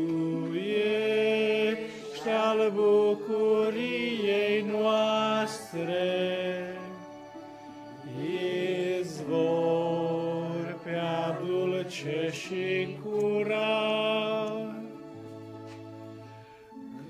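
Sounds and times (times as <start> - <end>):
electronic keyboard hymn chords: 0.0 - 17.0.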